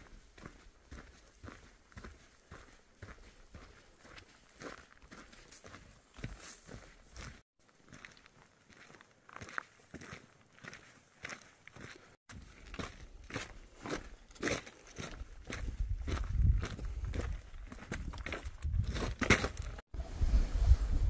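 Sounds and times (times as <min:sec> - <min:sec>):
footsteps on gravel trail: 0:00.0 - 0:19.8.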